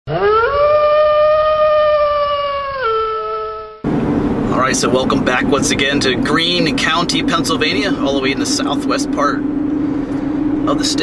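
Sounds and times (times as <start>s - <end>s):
long howl: 0.1s - 3.8s.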